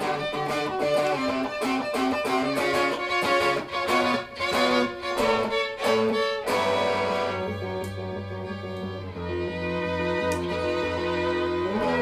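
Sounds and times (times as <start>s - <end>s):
guitar playing: 0.0s - 12.0s
violin playing: 0.0s - 12.0s.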